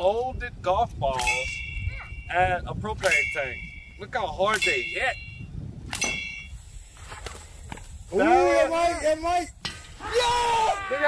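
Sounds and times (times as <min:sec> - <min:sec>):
metal tank ringing: 0:03.0 - 0:06.6.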